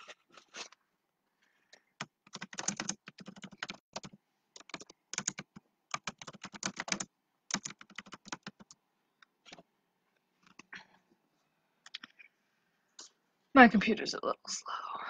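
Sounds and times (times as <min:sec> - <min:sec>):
typing on computer keyboard: 0:02.0 - 0:08.8.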